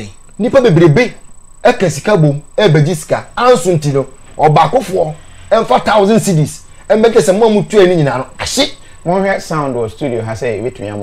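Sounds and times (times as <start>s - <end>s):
faint high-pitched whine: 0.0s - 11.0s
man talking: 0.0s - 11.0s.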